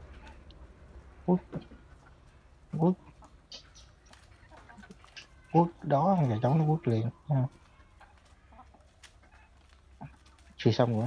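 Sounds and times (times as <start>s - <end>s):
rooster clucking: 0.0s - 11.0s.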